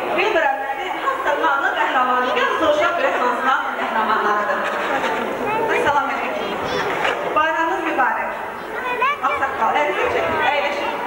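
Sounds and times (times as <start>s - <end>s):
background chatter: 0.0s - 11.0s
girl speaking into a microphone: 5.4s - 7.1s, 8.6s - 11.0s.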